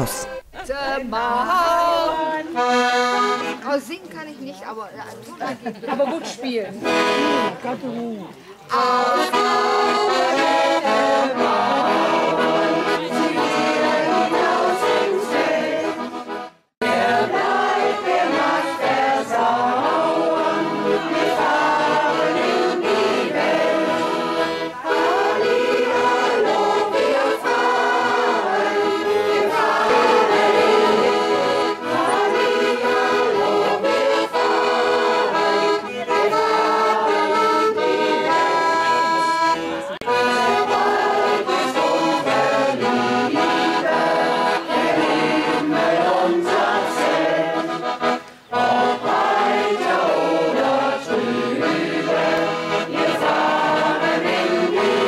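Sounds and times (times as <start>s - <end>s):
piano accordion: 0.0s - 0.5s, 1.9s - 4.4s, 6.8s - 7.8s, 8.7s - 55.0s
group of people singing: 1.0s - 3.4s, 8.7s - 39.0s, 40.0s - 55.0s.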